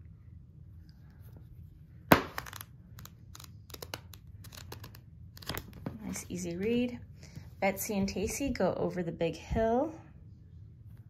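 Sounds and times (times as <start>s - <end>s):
pages riffling: 2.4s - 5.9s.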